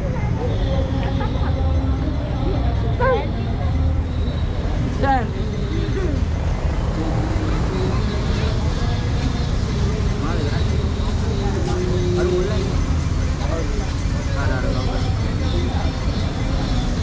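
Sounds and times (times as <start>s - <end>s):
crowd talking indistinctly: 0.0s - 17.0s.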